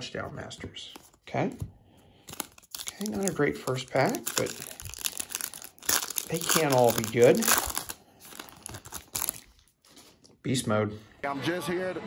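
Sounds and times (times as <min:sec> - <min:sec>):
foil wrapper crinkling: 0:02.2 - 0:10.2.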